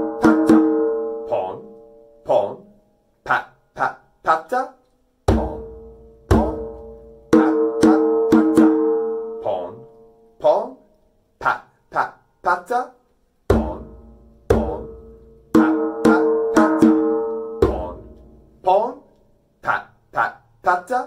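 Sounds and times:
djembe played by hand: 0:00.0 - 0:01.0, 0:05.3 - 0:09.1, 0:13.5 - 0:18.2
person speaking rhythm syllables: 0:01.2 - 0:08.2, 0:09.4 - 0:21.0.

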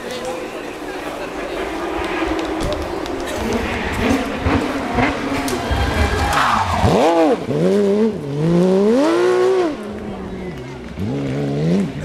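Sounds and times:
rally car engine approaching: 0:00.0 - 0:12.0
spectator chatter: 0:00.0 - 0:12.0.

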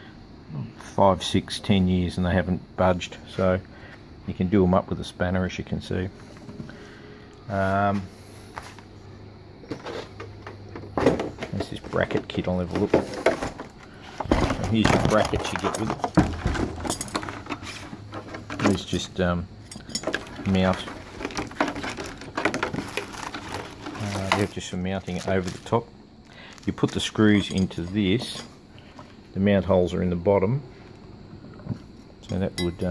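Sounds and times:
metal parts clicking: 0:15.0 - 0:24.5, 0:27.3 - 0:28.5.

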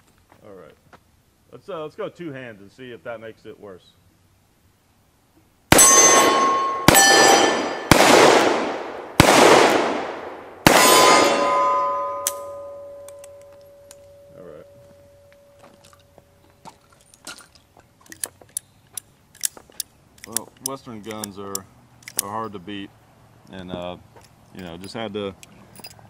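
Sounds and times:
steel target ringing: 0:05.7 - 0:08.0, 0:10.6 - 0:15.7.

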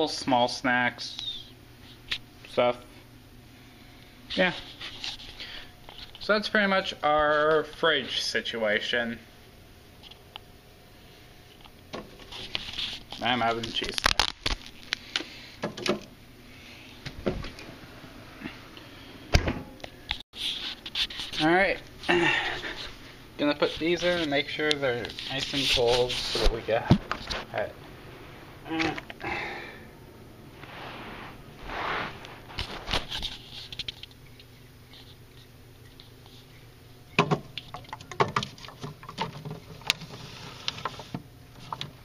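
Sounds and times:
rustling of snack packaging: 0:12.3 - 0:15.1
clicks and knocks of handling: 0:37.2 - 0:42.0.

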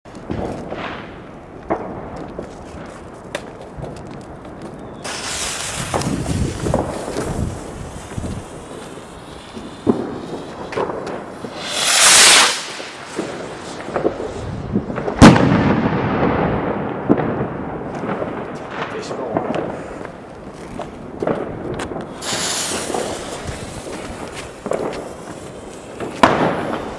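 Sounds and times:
scattered firework pops: 0:00.1 - 0:16.5, 0:17.1 - 0:26.9
firework hissing: 0:05.0 - 0:15.0, 0:22.1 - 0:26.9
rocket whooshing hiss: 0:05.0 - 0:16.2, 0:22.1 - 0:26.9.

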